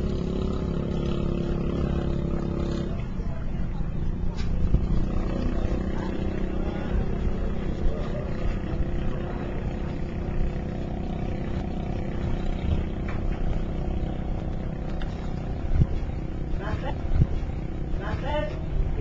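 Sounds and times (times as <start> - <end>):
boat engine humming: 0.0 - 19.0
wind and water noise: 3.4 - 19.0.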